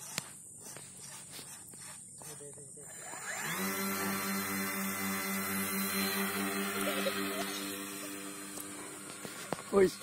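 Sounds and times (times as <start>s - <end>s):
electric propeller motors buzzing: 0.0s - 10.0s.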